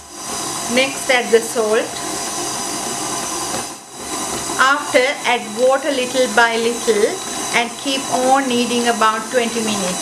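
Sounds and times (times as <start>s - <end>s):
stand mixer motor whirring: 0.0s - 10.0s.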